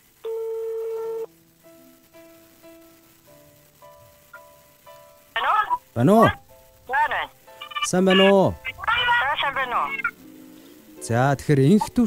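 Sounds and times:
soft background music: 0.2 - 12.0
telephone beep: 9.6 - 10.2.

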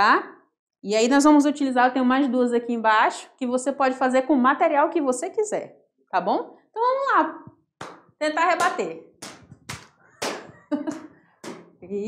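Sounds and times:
hands slapping shuttlecock: 7.8 - 11.8.

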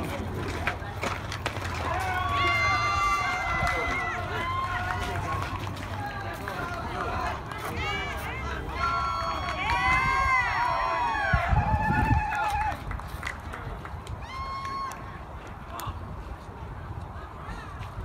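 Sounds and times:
people yelling and cheering: 0.0 - 18.0.

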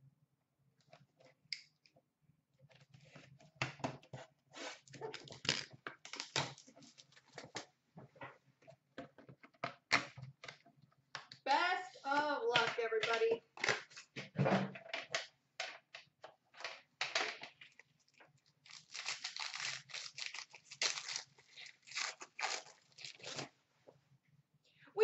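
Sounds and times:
person speaking: 11.5 - 13.5.

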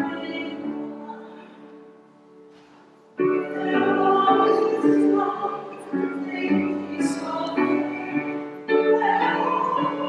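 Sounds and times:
choir singing a hymn: 0.0 - 1.7, 3.2 - 10.0.

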